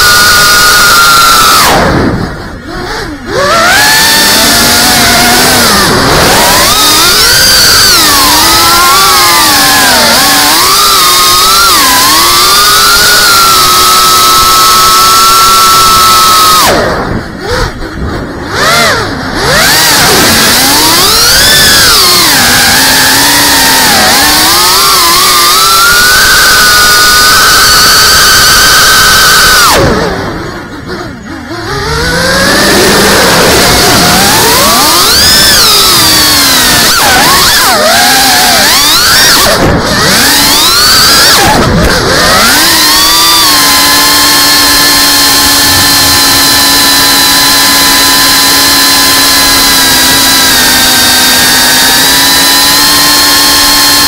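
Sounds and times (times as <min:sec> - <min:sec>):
quadcopter motors whining: 0:00.0 - 0:54.0.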